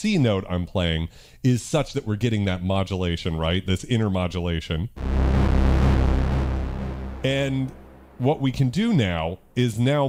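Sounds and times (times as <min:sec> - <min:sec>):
synthesizer low pulsing tone: 0:05.0 - 0:08.7.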